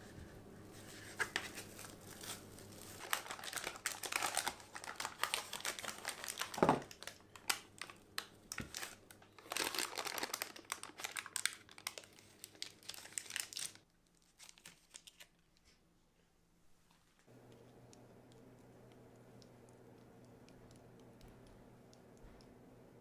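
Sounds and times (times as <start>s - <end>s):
paper crinkling and rustling: 0.8s - 15.8s.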